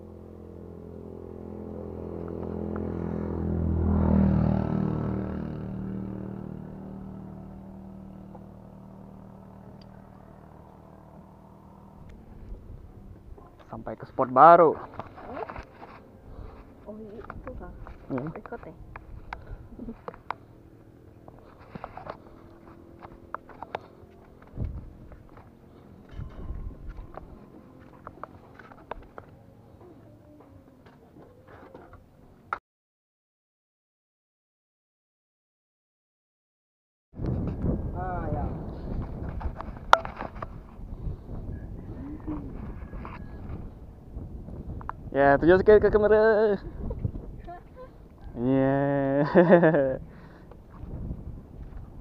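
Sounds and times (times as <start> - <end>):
wind rumbling on microphone: 11.3 - 14.2, 14.9 - 20.2, 21.4 - 29.2, 37.2 - 52.0.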